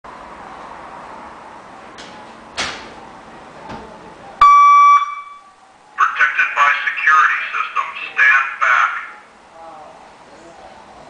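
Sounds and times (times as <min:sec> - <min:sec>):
car alarm electronic beep: 0:04.4 - 0:05.5.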